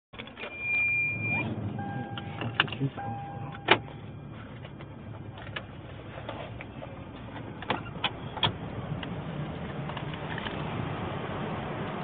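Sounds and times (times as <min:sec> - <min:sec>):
vehicle rumble inside car cabin: 0:00.2 - 0:12.0
high electronic beep: 0:00.4 - 0:04.2
lower electronic beep: 0:00.4 - 0:04.4.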